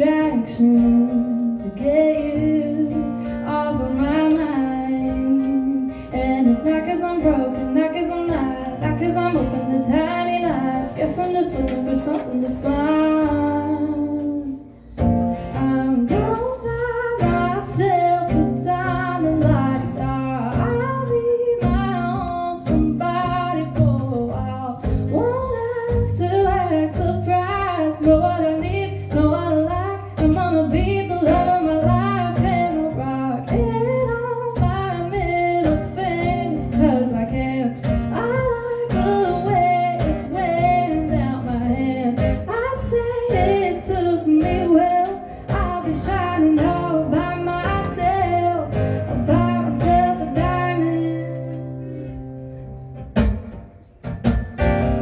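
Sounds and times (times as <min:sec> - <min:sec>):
woman singing: 0:00.0 - 0:52.2
strummed acoustic guitar: 0:00.0 - 0:55.0.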